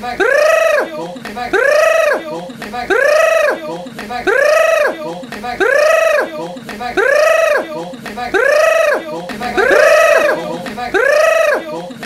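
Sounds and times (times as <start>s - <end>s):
high rising and falling call: 9.4s - 10.8s.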